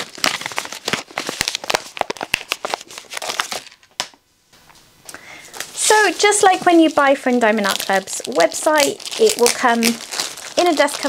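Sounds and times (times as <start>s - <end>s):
plastic packaging crinkling: 0.0s - 4.2s, 5.5s - 11.0s.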